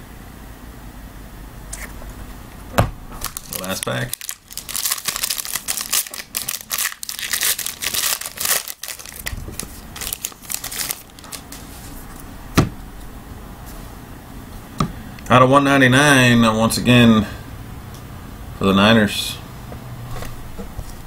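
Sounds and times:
foil wrapper crinkling and tearing: 3.2s - 11.6s
cards handling: 3.2s - 12.3s.

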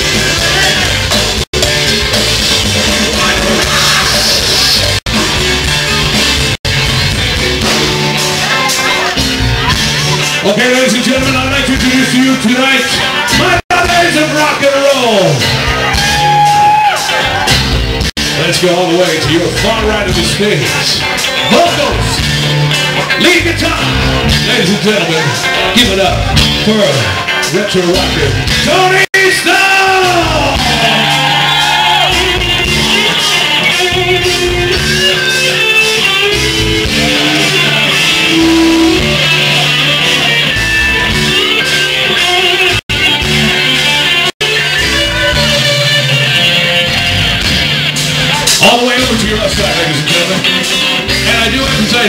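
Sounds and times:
bass guitar: 0.0s - 52.0s
drums: 0.0s - 52.0s
electric guitar lead: 0.0s - 52.0s
live rock band playing: 0.0s - 52.0s.

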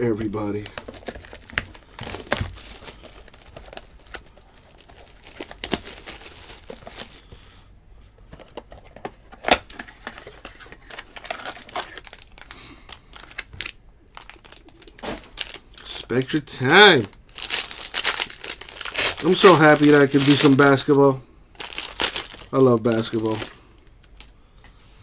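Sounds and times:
shrink wrap crinkling and tearing: 0.2s - 7.4s, 9.4s - 24.4s
foil pack handled: 17.4s - 20.9s, 21.6s - 23.5s.

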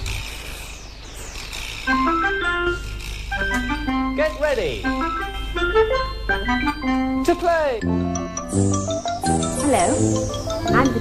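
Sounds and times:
bouncy keyboard theme tune: 1.9s - 11.0s.

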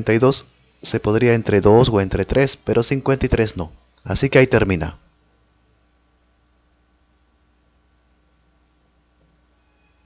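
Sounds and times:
thin electrical hum: 0.0s - 10.0s.

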